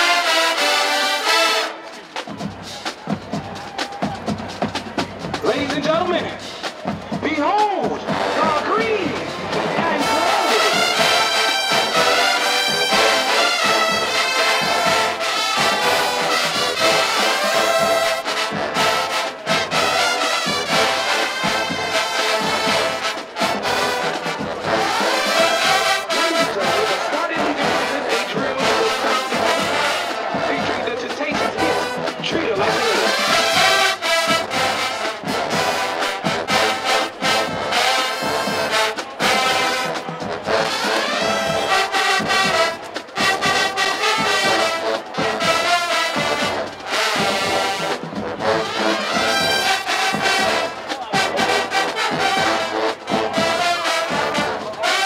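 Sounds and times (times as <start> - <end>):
snare drums and cymbals: 0.0 - 55.0
trumpets and trombones: 0.0 - 55.0.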